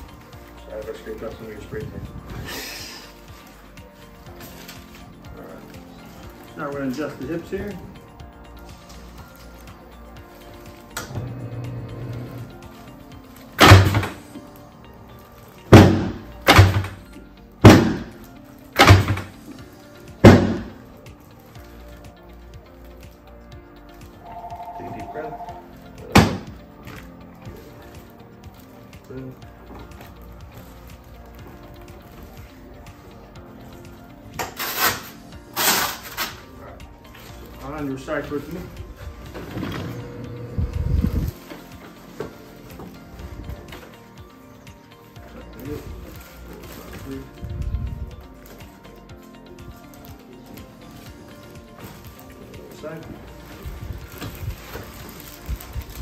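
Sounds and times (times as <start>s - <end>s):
soft background music: 0.0s - 56.0s.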